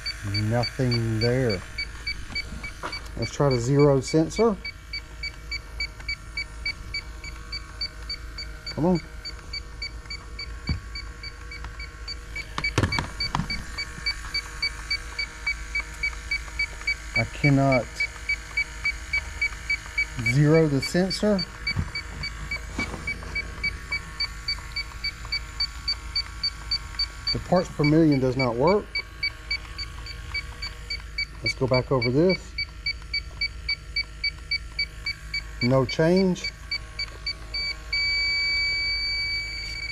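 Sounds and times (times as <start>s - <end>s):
leak detector short beeps: 0.0s - 39.9s.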